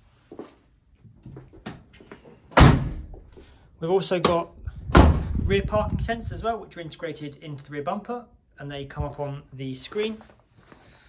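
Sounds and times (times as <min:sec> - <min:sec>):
van door slamming: 0:02.6 - 0:03.1, 0:04.9 - 0:05.4.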